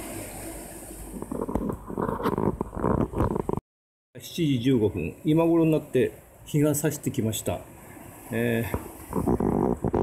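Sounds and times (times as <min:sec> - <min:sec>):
steady microphone hiss: 0:00.0 - 0:03.6, 0:04.2 - 0:10.0.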